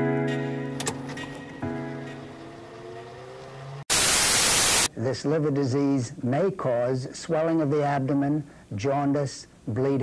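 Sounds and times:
held music chord: 0.0 - 3.4
static hiss burst: 3.9 - 4.9.

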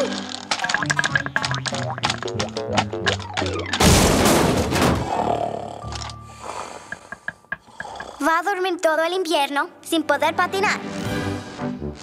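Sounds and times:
loud cartoon crash: 3.8 - 5.1.

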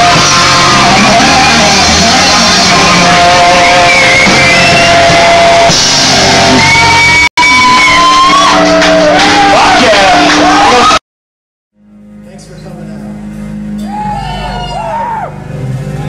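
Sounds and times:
rock band playing live: 0.0 - 11.0, 11.9 - 16.0
shouted vocals: 0.0 - 11.0, 13.8 - 15.4.

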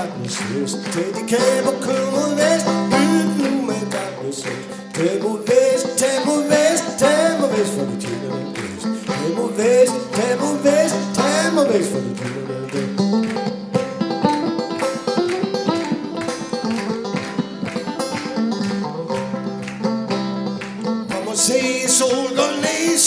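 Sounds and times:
man singing: 0.0 - 13.2, 21.1 - 23.0
banjo strumming: 0.0 - 23.0.

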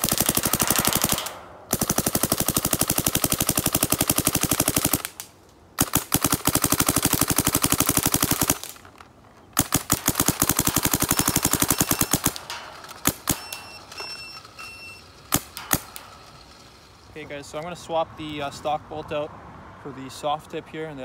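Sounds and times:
paintball marker firing: 15.3 - 16.4.

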